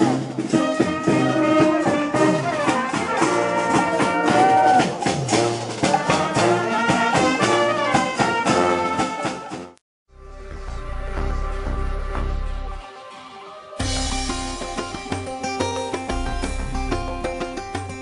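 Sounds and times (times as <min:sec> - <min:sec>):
brass band playing: 0:00.0 - 0:09.8.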